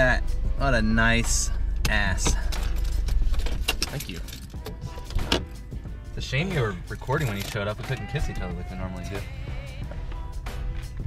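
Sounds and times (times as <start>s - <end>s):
car engine rumbling: 0.0s - 11.0s
light metallic clicks and jingles: 2.2s - 5.2s, 6.8s - 8.2s.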